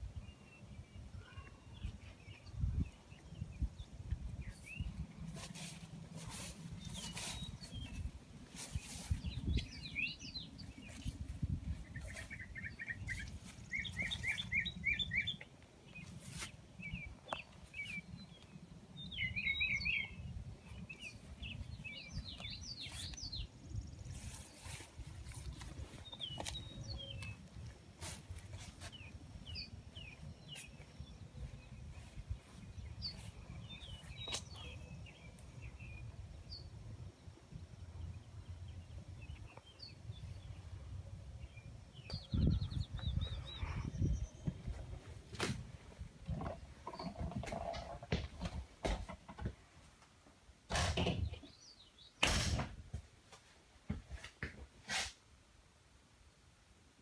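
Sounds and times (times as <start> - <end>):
songbirds chirping and trilling: 0.0 - 53.0.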